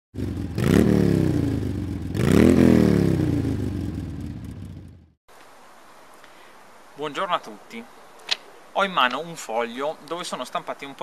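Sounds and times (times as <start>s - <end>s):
motorcycle engine revving: 0.1s - 5.2s.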